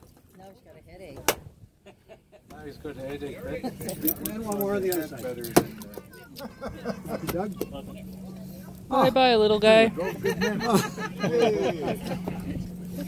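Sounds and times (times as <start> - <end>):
keys jangling: 3.8 - 5.9
steady low hum: 6.0 - 13.0.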